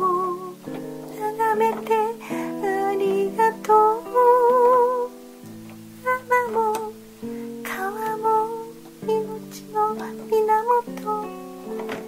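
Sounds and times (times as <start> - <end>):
acoustic guitar chords: 0.0 - 12.0
person singing: 0.0 - 12.0.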